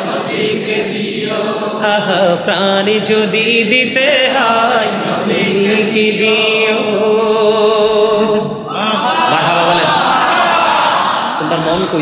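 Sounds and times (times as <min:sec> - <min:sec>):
man singing through microphones: 0:01.6 - 0:09.9.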